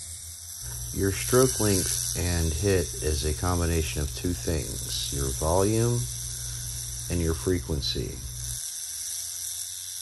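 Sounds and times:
low hum: 0:00.0 - 0:08.6
tattoo machine buzzing: 0:00.0 - 0:10.0.

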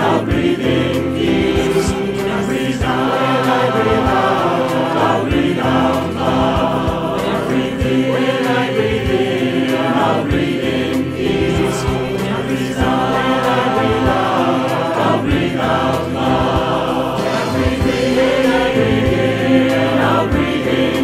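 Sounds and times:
choir singing: 0:00.0 - 0:21.0.

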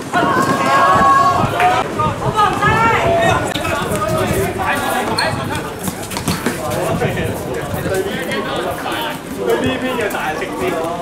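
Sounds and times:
players calling out: 0:00.0 - 0:11.0
ball knocking on hard court: 0:05.8 - 0:06.7.

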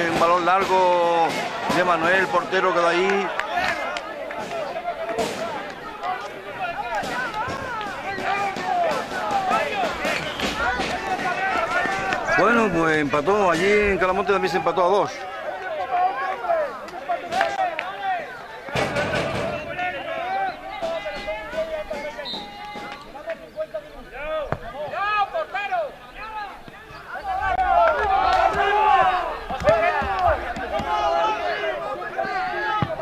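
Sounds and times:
voices shouting: 0:00.0 - 0:33.0.

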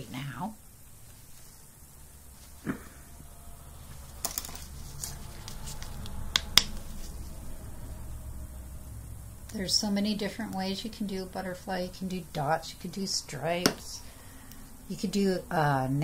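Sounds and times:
low steady hum: 0:00.0 - 0:16.0
small objects clicking and tapping: 0:04.2 - 0:04.8, 0:05.5 - 0:06.8.

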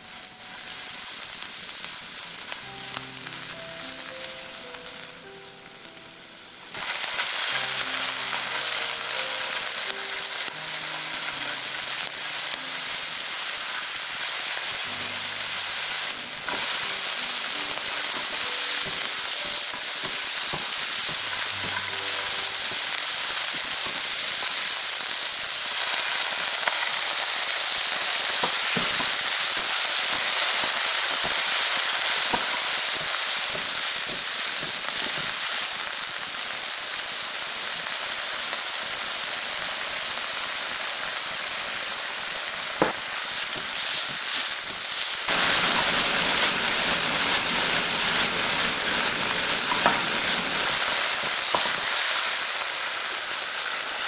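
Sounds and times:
food sizzling in hot oil: 0:00.0 - 0:54.0.

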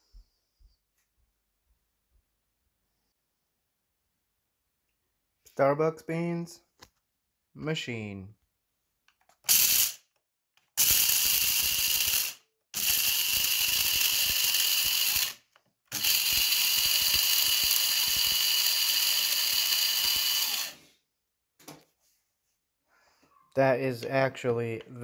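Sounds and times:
coffee grinder whirring: 0:09.4 - 0:10.0, 0:10.7 - 0:20.9.

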